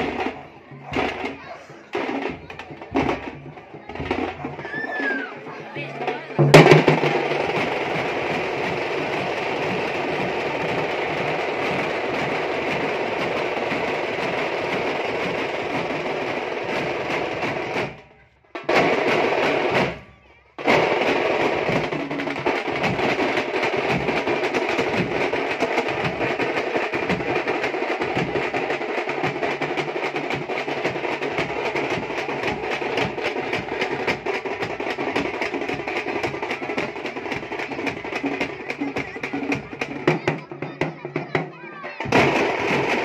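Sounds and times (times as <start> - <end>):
drum band playing fast rhythm: 0.0 - 43.0.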